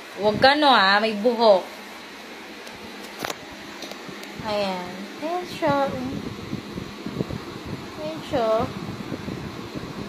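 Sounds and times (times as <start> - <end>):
steady low hum: 0.0 - 10.0
phone microphone handling noise: 2.7 - 4.5.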